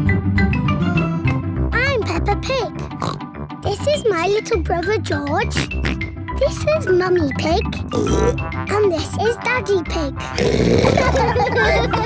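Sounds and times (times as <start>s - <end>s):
cheerful children's theme music: 0.0s - 12.0s
girl speaking: 1.7s - 2.9s, 3.6s - 5.7s, 6.4s - 7.9s, 8.7s - 10.4s
pig snorts by voice: 3.0s - 3.2s, 5.4s - 6.0s, 7.9s - 8.4s, 10.2s - 11.2s.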